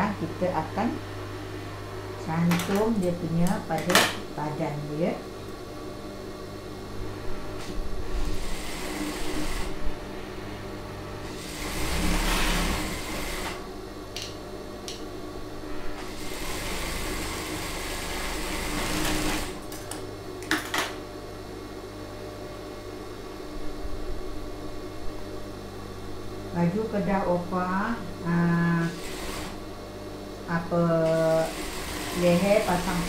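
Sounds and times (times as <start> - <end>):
sewing machine motor humming: 8.2 - 9.8, 11.2 - 13.7, 16.0 - 19.7, 28.6 - 29.6, 31.0 - 33.0
sewing machine stitching: 11.3 - 13.6, 16.0 - 19.6, 28.9 - 29.6, 31.0 - 33.0.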